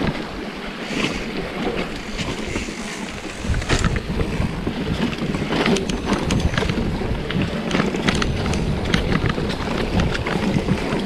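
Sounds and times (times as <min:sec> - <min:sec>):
bike rattles and clicks: 0:00.0 - 0:11.0
wind buffeting microphone: 0:00.0 - 0:11.0
tyre rumble on dirt trail: 0:02.1 - 0:11.0.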